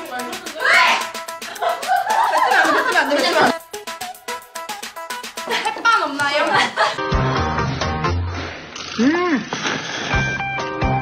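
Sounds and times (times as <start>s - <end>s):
background music: 0.0s - 9.0s, 9.6s - 11.0s
person slurping noodles: 8.2s - 10.2s.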